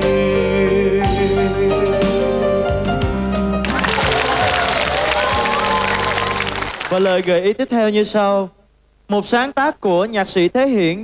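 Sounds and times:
live band holding chord: 1.4s - 7.1s
audience applauding and cheering: 3.6s - 7.4s.

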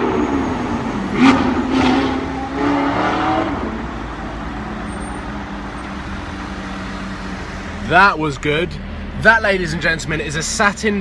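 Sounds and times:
steady traffic hum: 0.0s - 11.0s.

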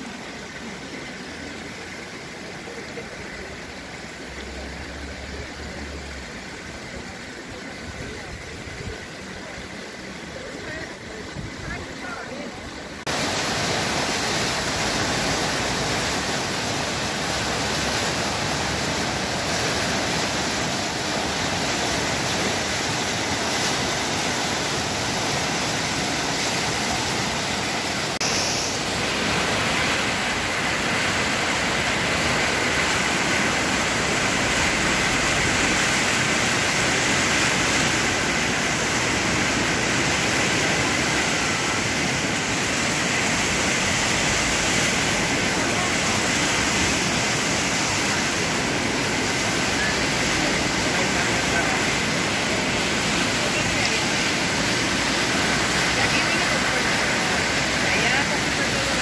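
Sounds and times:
floodwater rushing: 0.0s - 59.0s.

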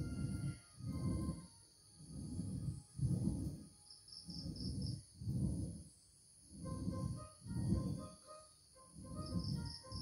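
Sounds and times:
ab wheel rolling on concrete: 0.0s - 8.2s, 8.9s - 10.0s.

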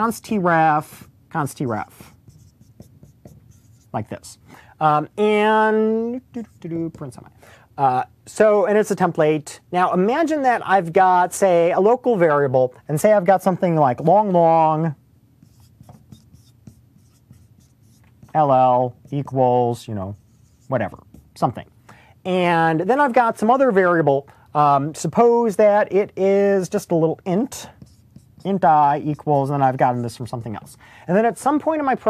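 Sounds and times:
marker scratching on whiteboard: 1.6s - 4.3s, 6.1s - 7.2s, 15.4s - 21.6s, 26.4s - 31.7s.

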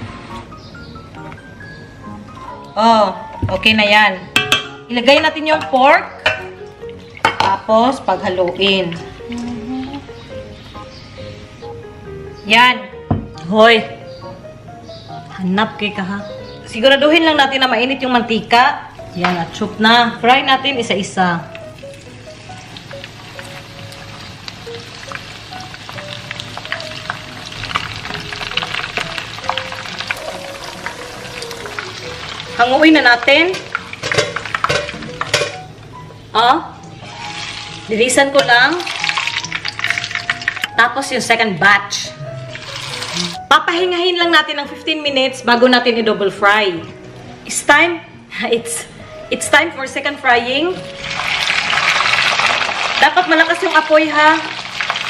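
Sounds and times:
background music: 0.0s - 55.0s
oil crackling: 21.5s - 35.6s, 36.9s - 40.8s, 42.5s - 43.4s, 50.8s - 55.0s
meat sizzling in hot oil: 21.6s - 35.4s, 37.0s - 40.8s, 42.5s - 43.5s, 50.8s - 55.0s.

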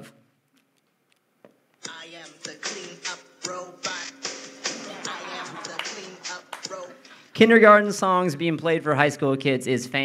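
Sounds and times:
children's song from speaker: 1.8s - 7.6s.

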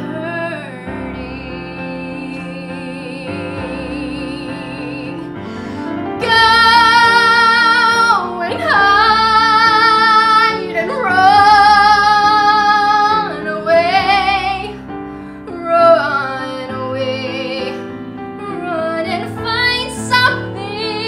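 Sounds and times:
woman singing with vibrato: 0.0s - 14.8s, 15.5s - 17.8s, 18.4s - 21.0s.

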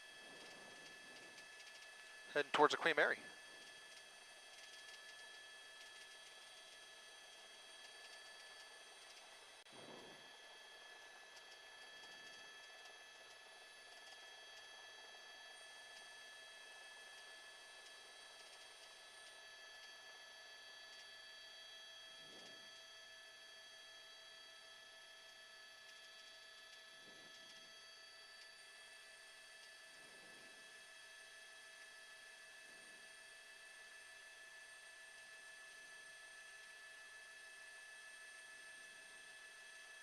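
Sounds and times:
faint electronic hum: 29.6s - 32.0s.

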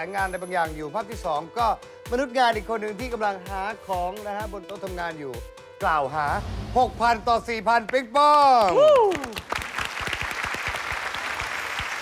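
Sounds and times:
studio audience applause: 7.8s - 12.0s.

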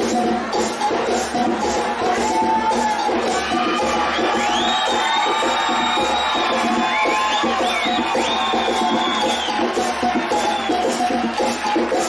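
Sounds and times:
crowd cheering: 0.0s - 12.0s
high whoops: 2.2s - 11.2s.

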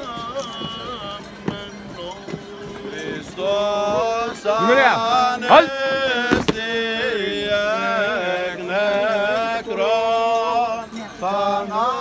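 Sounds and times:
man chanting ornamented melody: 0.0s - 12.0s.

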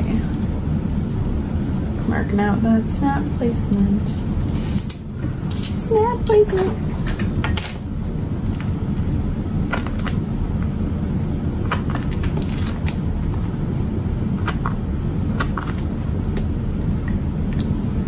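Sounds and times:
low background rumble: 0.0s - 18.0s.

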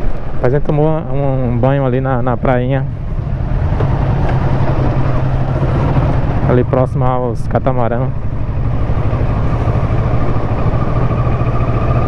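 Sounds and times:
road noise: 0.0s - 12.0s
motorcycle engine low hum: 1.3s - 12.0s.

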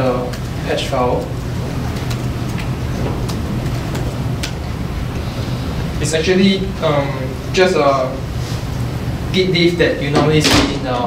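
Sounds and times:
ventilation hum: 0.0s - 11.0s.

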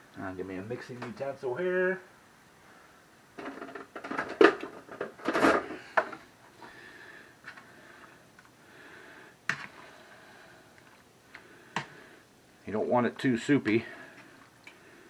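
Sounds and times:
wet scraping of stirring: 9.5s - 10.0s.

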